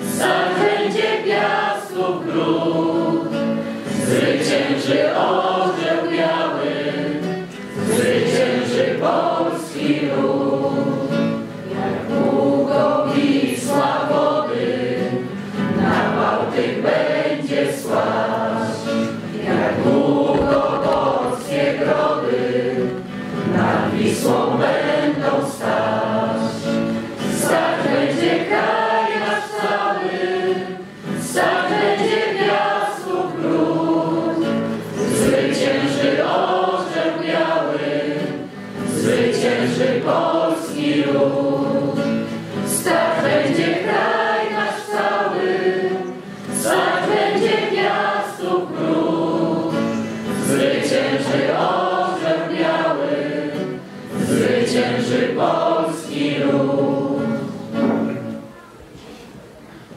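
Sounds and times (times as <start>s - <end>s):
group of voices singing: 0.0s - 58.4s.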